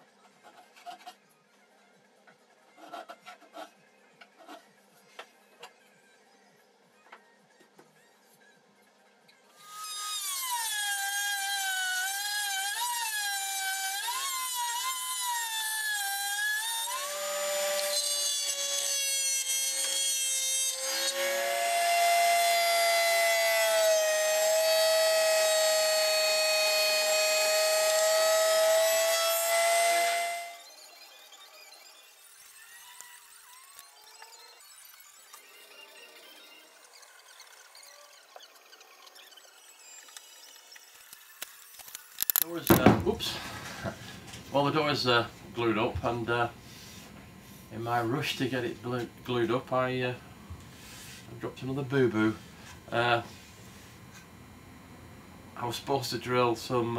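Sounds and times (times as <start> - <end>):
router whining while cutting wood: 9.6 - 44.6.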